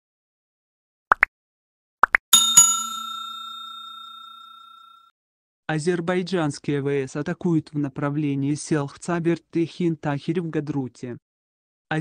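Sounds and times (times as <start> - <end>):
notification bell chime: 2.4 - 5.0.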